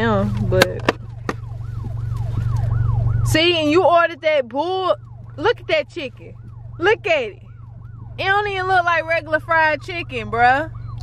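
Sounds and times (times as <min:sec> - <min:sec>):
low rumble inside car: 0:00.0 - 0:11.0
emergency siren yelping: 0:00.9 - 0:11.0.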